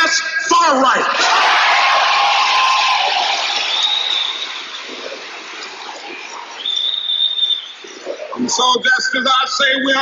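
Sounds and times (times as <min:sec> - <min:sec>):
audience applauding and cheering: 0:01.1 - 0:07.3.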